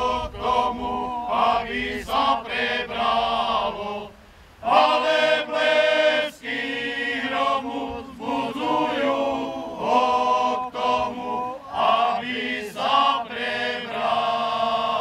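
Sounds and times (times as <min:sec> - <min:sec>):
male choir singing: 0:00.0 - 0:15.0.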